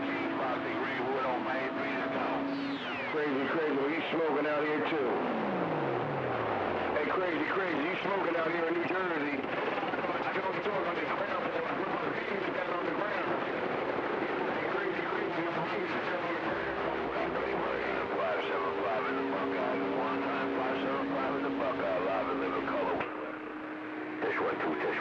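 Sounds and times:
low radio whistles: 0:00.0 - 0:04.8
garbled radio voices: 0:00.0 - 0:25.0
radio band noise: 0:00.0 - 0:25.0.

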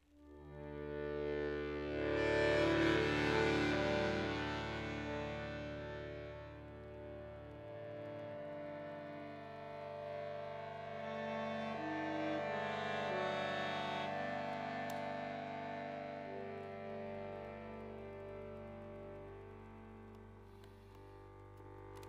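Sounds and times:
accordion playing sustained chords: 0:00.2 - 0:22.0.

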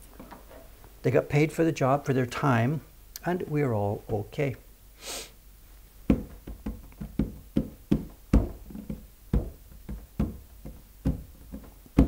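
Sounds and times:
fingers tapping on wood: 0:06.1 - 0:12.0.

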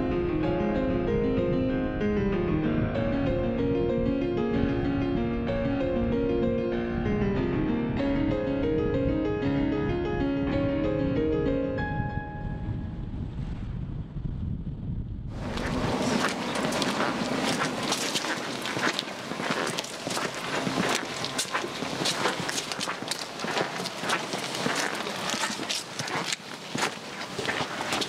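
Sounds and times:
piano notes: 0:00.0 - 0:13.0
low rumble: 0:00.0 - 0:18.2
steady outdoor hiss: 0:15.4 - 0:28.0.

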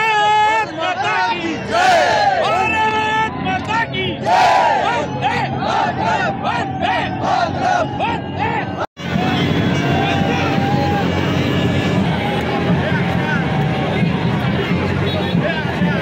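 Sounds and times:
crowd cheering: 0:00.0 - 0:16.0
crowd chanting: 0:00.6 - 0:02.6, 0:04.1 - 0:09.6.

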